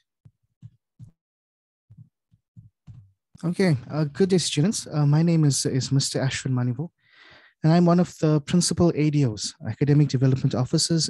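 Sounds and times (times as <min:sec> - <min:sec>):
soft low thumps: 0:00.2 - 0:01.2, 0:01.9 - 0:03.2.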